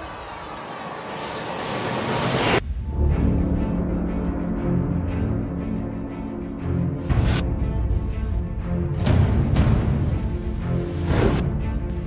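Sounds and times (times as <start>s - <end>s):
commercial soundtrack: 0.5s - 12.0s.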